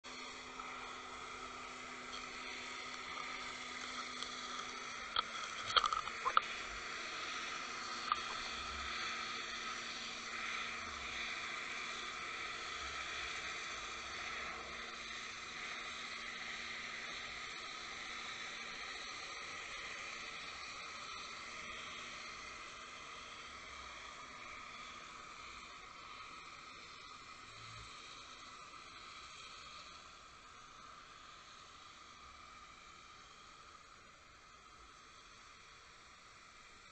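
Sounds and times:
underwater water hiss: 0.2s - 36.9s.

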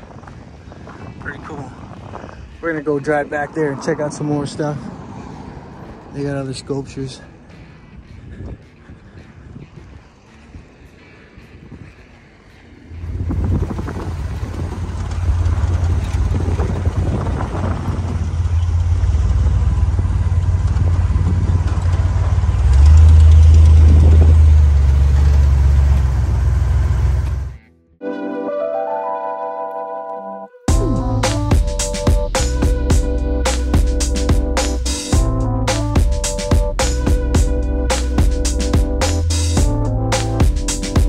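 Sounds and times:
steady rushing noise: 0.0s - 21.7s
car engine running: 12.4s - 27.6s.

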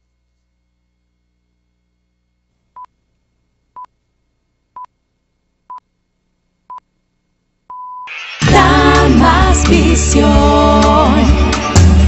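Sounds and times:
short pure-tone beeps: 7.7s - 8.1s.

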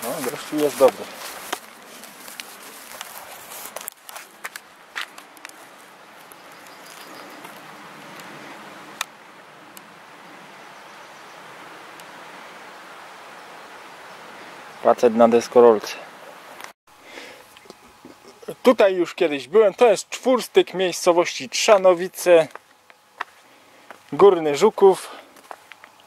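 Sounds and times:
faint outdoor background noise: 0.0s - 26.0s.

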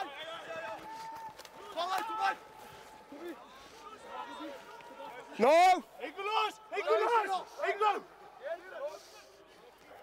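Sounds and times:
men shouting on a field: 0.0s - 9.2s
sports commentary: 0.0s - 10.0s.

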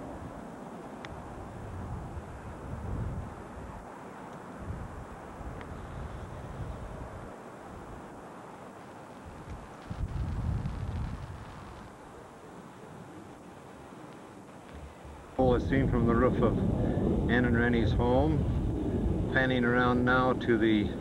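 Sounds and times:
steady background hiss: 0.0s - 21.0s
wind buffeting microphone: 1.1s - 3.9s, 4.5s - 8.2s, 9.2s - 12.0s, 14.7s - 21.0s.

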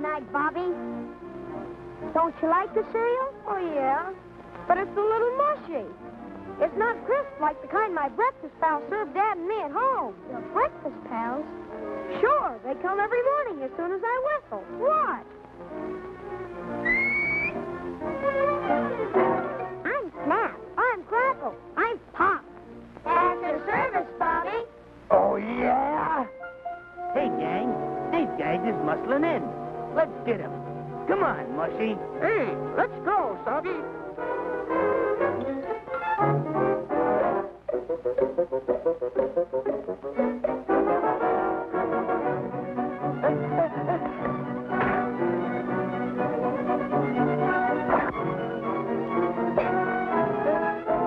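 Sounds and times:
orchestral music: 14.6s - 20.8s, 21.4s - 51.0s
high finger whistle: 16.8s - 17.6s.

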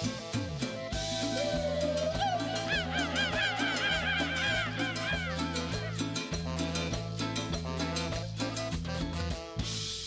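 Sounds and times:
live cumbia band playing: 0.0s - 10.0s.

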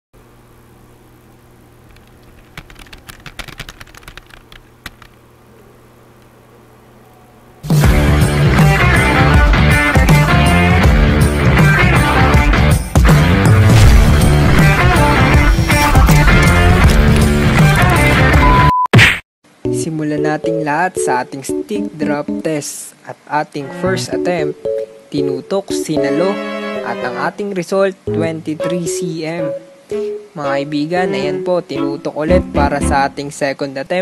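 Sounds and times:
faint steady hum: 0.2s - 8.1s, 19.5s - 34.0s
computer keyboard typing: 1.9s - 5.2s
guitar music: 7.6s - 18.5s, 23.6s - 27.3s, 28.1s - 33.2s
rock music: 7.6s - 18.7s.

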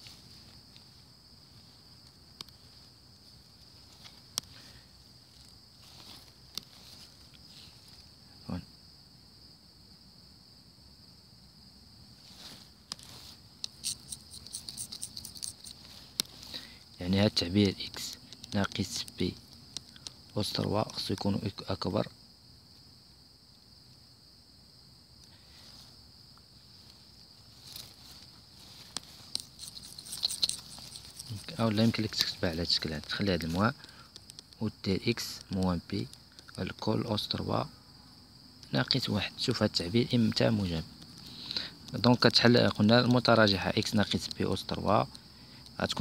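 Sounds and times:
man speaking: 8.4s - 8.7s, 17.0s - 19.4s, 20.4s - 22.1s, 31.2s - 33.8s, 34.6s - 37.7s, 38.7s - 40.9s
stylus scratching on touchscreen: 13.8s - 15.7s.

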